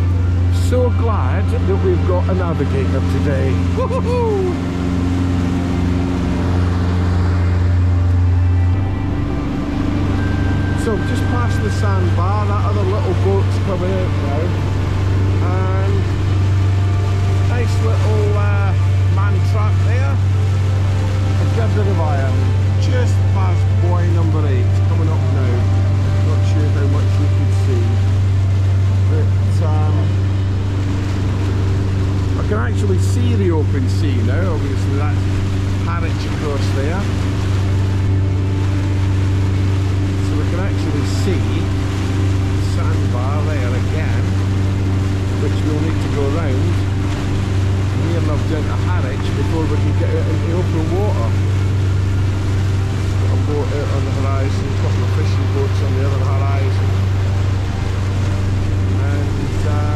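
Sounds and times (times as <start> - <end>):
outboard engine droning: 0.0 - 59.9
water rushing past hull: 0.0 - 59.9.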